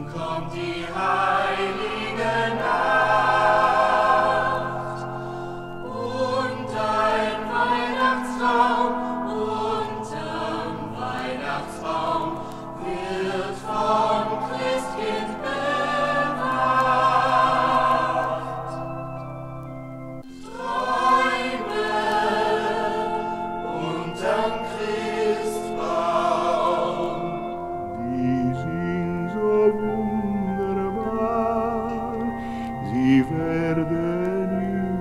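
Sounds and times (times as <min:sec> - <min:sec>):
mixed choir singing: 0:00.0 - 0:19.0, 0:20.2 - 0:32.2
pipe organ: 0:00.0 - 0:35.0.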